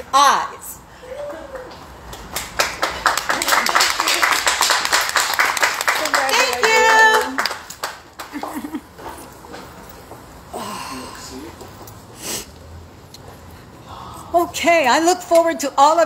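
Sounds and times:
people clapping: 1.2 - 9.0.

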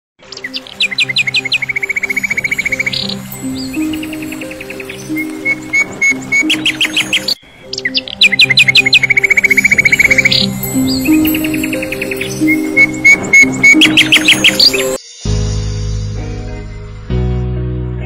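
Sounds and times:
birds chirping: 0.2 - 15.6
soft background music: 0.2 - 18.0.

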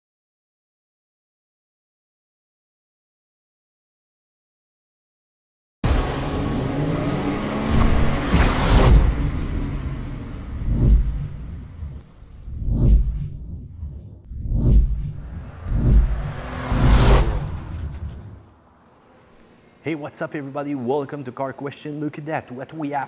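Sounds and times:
whooshes: 6.6 - 18.6
deep rumble: 7.6 - 18.5.

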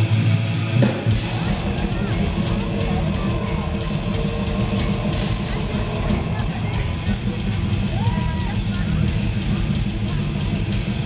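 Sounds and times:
bass guitar: 0.0 - 11.0
distorted electric guitars: 0.0 - 11.0
drums steady beat: 0.8 - 11.0.

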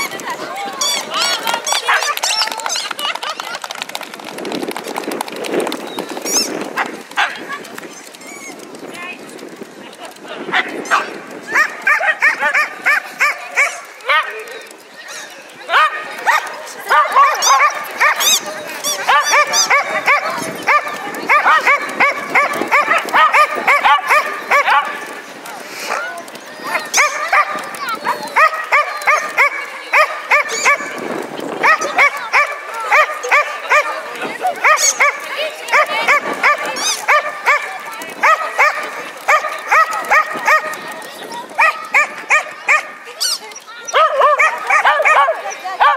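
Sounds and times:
dog barking rapidly: 1.2 - 3.1, 6.8 - 7.5, 10.9 - 14.3, 15.7 - 25.1, 28.4 - 30.9, 31.6 - 33.9, 34.6 - 40.8, 41.6 - 43.0, 43.9 - 45.9.

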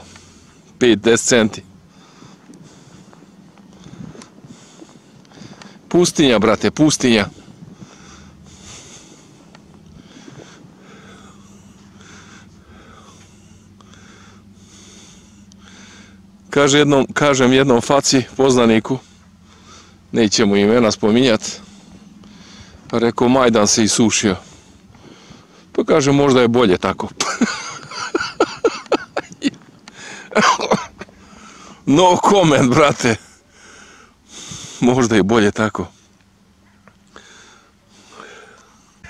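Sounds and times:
person breathing close: 0.0 - 0.8, 1.7 - 5.9, 7.2 - 16.4, 18.9 - 20.1, 21.4 - 22.9, 24.2 - 25.8, 29.8 - 31.9, 33.0 - 34.9, 37.0 - 39.0
faint low hum: 0.0 - 39.0
man coughing: 27.2 - 29.5, 30.2 - 31.1.

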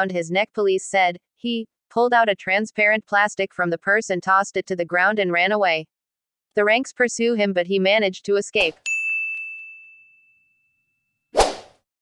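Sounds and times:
bright bell-like ding: 8.9 - 11.1.

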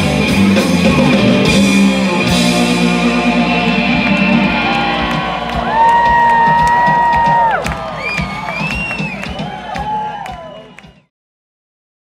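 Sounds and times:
electric guitar chord ringing: 0.0 - 6.4
crowd cheering and clapping: 0.5 - 11.1
held high note: 1.5 - 7.5.

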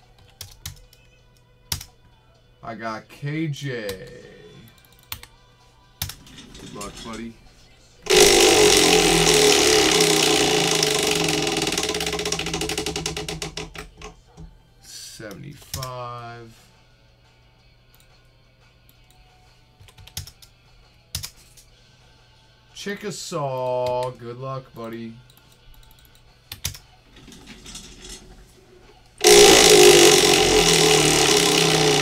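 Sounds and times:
prize wheel pegs clicking: 6.2 - 7.3, 8.1 - 14.1.

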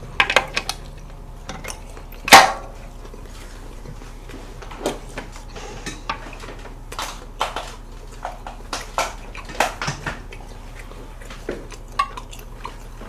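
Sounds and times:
utensils clattering on dishes: 0.0 - 2.8, 5.4 - 10.7
steady low hum: 0.0 - 13.0.

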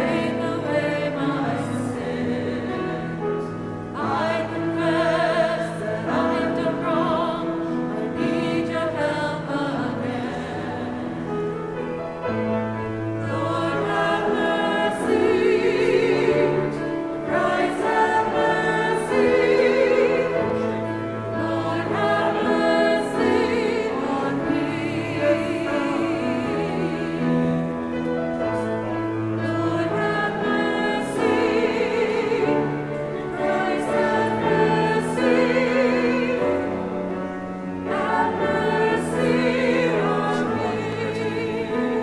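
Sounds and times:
choir singing held chords: 0.0 - 42.0.

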